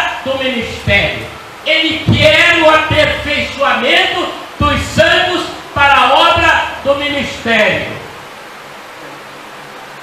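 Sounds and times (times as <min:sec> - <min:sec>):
room noise hiss: 0:00.0 - 0:10.0.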